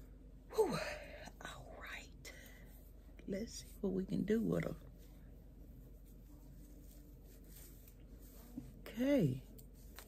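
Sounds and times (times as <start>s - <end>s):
woman whispering: 0.5s - 4.8s.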